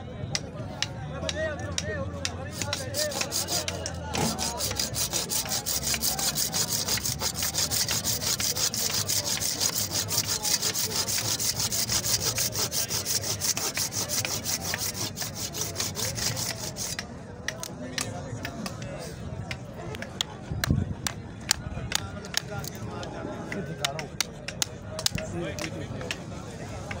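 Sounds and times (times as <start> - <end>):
hand saw cutting horn: 2.2 - 17.0.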